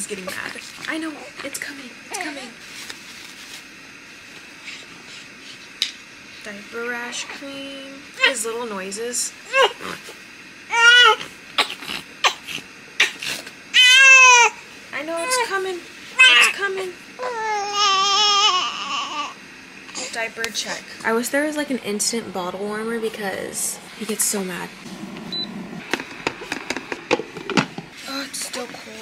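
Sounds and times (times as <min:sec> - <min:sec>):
newborn baby crying: 0:09.5 - 0:09.8, 0:10.7 - 0:12.4, 0:13.0 - 0:14.6, 0:15.2 - 0:15.5, 0:16.2 - 0:16.6, 0:17.2 - 0:19.4.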